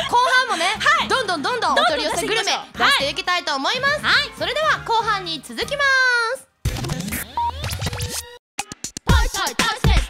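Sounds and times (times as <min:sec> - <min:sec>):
woman speaking: 0:00.0 - 0:06.5
record scratch effect: 0:06.6 - 0:09.8.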